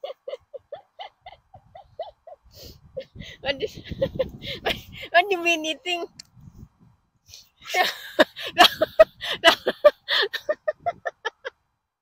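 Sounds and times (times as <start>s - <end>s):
person giggling: 0.0s - 5.0s, 7.6s - 11.5s.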